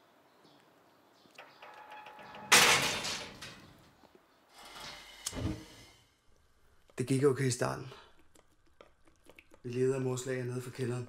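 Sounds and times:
gate clicks: 1.4 - 3.9
gate creaking: 1.4 - 3.9
iron gate rattling: 1.4 - 3.9.

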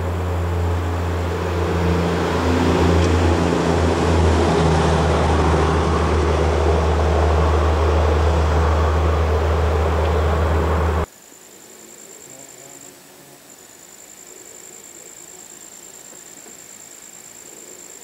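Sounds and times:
vehicle engine drone from cabin: 0.0 - 11.1
road noise hiss: 0.0 - 18.0.

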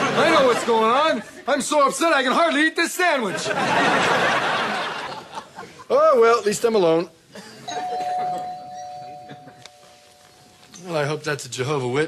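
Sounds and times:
doorbell chime ringing: 7.7 - 10.6.

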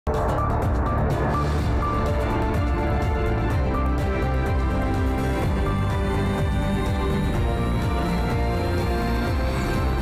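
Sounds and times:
news theme music: 0.1 - 10.0.

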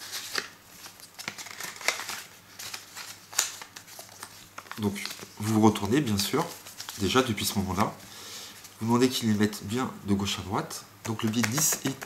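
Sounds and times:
paper rustling and crinkling: 0.0 - 9.0, 11.1 - 12.0.

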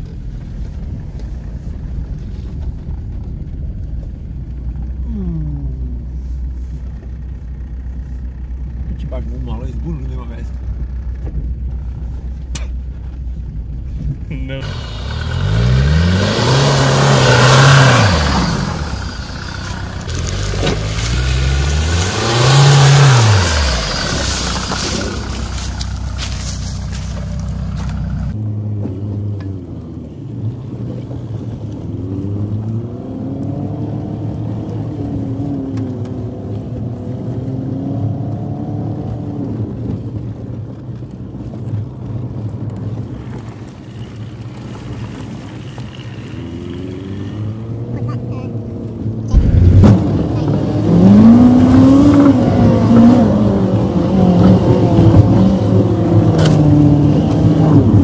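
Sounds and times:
car engine revving: 13.9 - 28.7, 45.7 - 58.0
tyres churning through mud: 14.3 - 28.4, 40.2 - 58.0.

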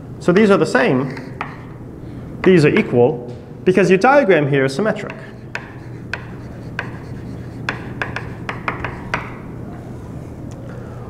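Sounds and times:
chalk tapping and scratching: 1.1 - 1.8, 4.9 - 9.5.

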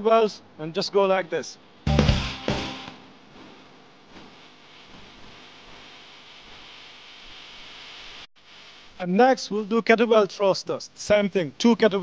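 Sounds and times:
steady background hiss: 0.0 - 1.9, 2.8 - 12.0.

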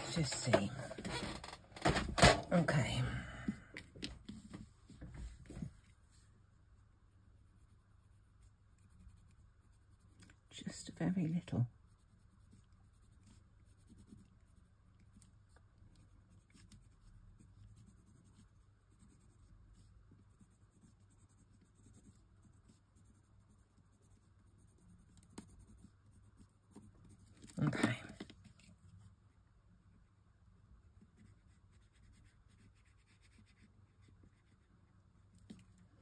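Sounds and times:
pencil scratching on card: 7.2 - 29.2, 31.0 - 35.7.

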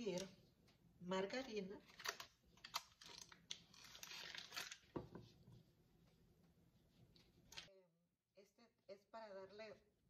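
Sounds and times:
wrapper crinkling: 1.8 - 5.0.

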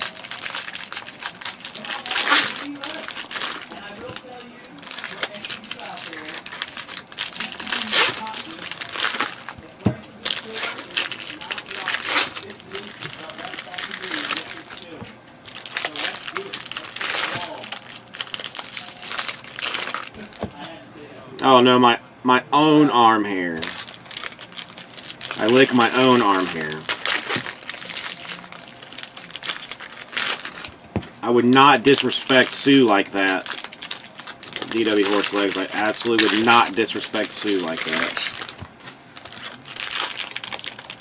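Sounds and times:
card pack wrappers crinkling: 0.0 - 20.5, 23.4 - 30.8, 31.6 - 41.0.

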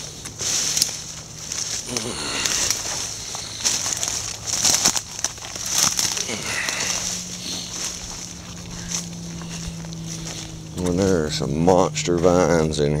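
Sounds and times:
branches and leaves crackling: 0.0 - 13.0.

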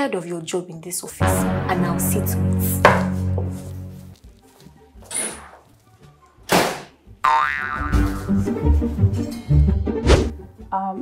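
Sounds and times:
background music: 0.0 - 11.0
cartoon boing: 7.2 - 8.3.

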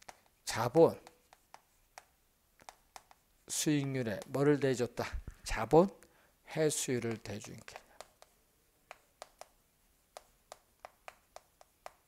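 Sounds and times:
chalk tapping on blackboard: 0.0 - 4.6, 6.9 - 12.0.

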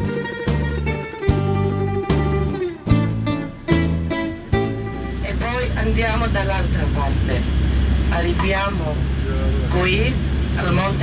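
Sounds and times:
coach engine and road noise: 0.0 - 11.0.

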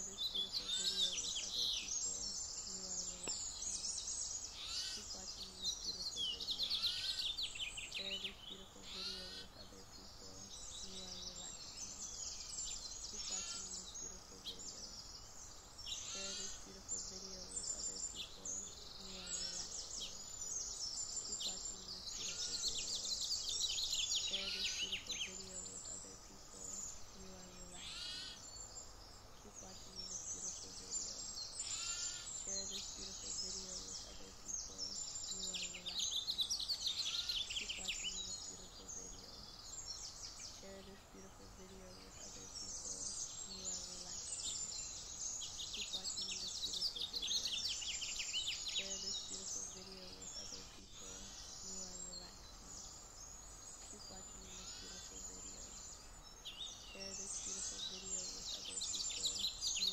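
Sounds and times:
faint outdoor hiss: 0.0 - 59.9
songbirds chirping: 0.0 - 59.9.

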